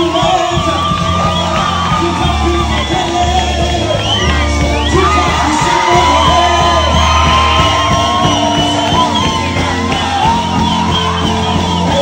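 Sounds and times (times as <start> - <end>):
bass: 0.0 - 12.0
choir singing through speakers: 0.0 - 12.0
steady drum beat: 0.0 - 12.0.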